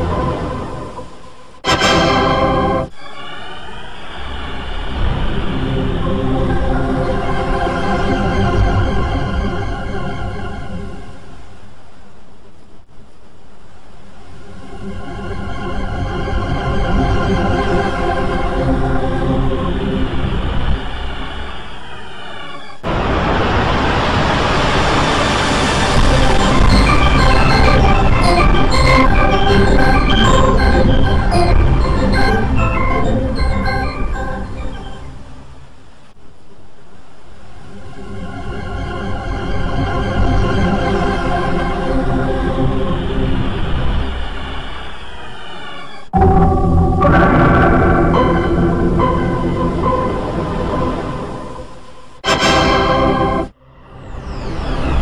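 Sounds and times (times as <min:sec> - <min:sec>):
pitch-shifted computer startup chord: 0:01.6 - 0:02.9, 0:25.5 - 0:35.5, 0:46.2 - 0:55.0
rough rumbling noise: 0:22.8 - 0:36.0
deep low drone: 0:22.9 - 0:35.4, 0:46.2 - 0:55.0.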